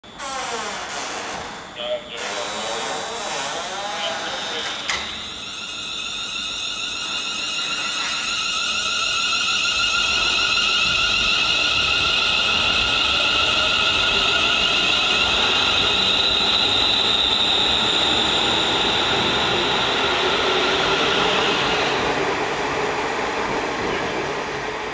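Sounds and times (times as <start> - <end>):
electric train whine: 0.0 - 24.9.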